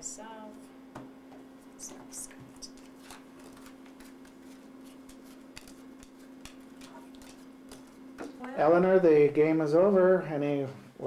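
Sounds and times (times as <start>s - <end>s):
playing cards dealt onto wooden table: 2.7s - 7.9s.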